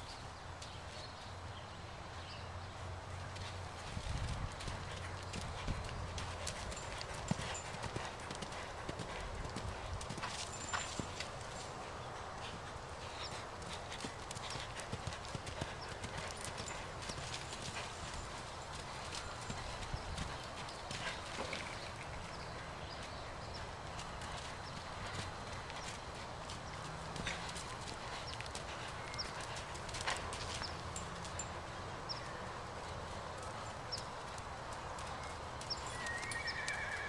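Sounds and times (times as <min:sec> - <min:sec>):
horse hooves cantering on sand: 0:00.0 - 0:37.0
steady background noise: 0:00.0 - 0:37.0.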